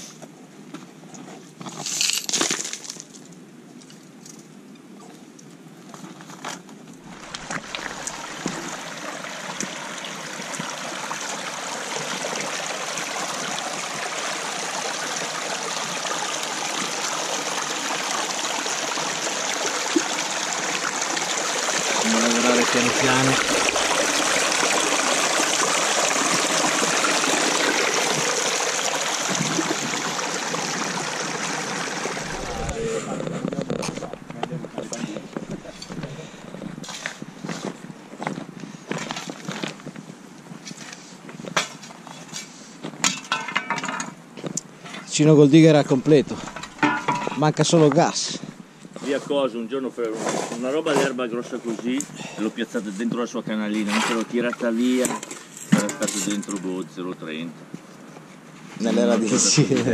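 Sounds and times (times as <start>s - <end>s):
stream water over stones: 7.0s - 37.6s, 44.8s - 49.5s.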